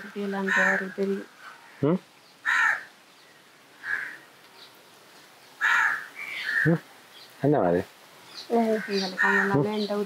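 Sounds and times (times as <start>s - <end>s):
crow cawing: 0.4s - 1.8s, 2.4s - 2.9s, 3.8s - 4.3s, 5.6s - 6.8s, 8.6s - 9.7s.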